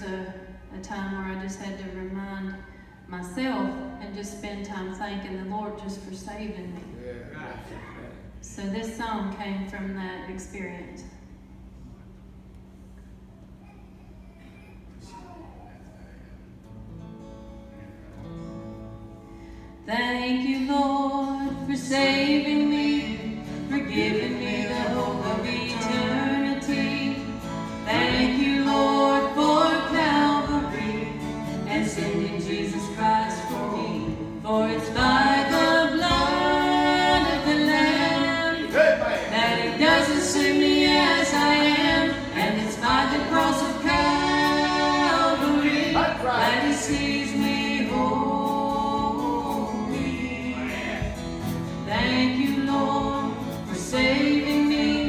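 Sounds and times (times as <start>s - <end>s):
acoustic guitar chords: 16.6s - 55.0s
woman and man singing gospel: 19.9s - 55.0s.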